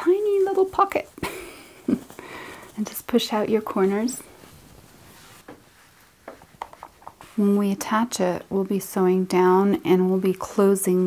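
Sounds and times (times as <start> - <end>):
fabric handling: 0.0 - 8.0.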